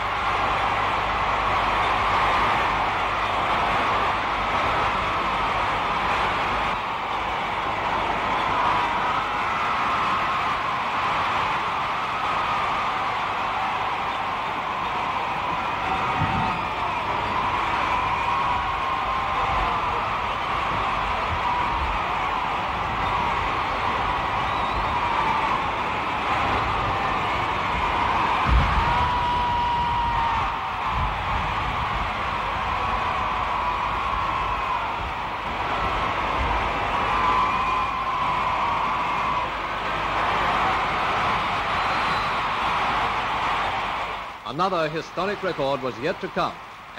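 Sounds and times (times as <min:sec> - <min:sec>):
huge crowd cheering: 0:00.0 - 0:46.9.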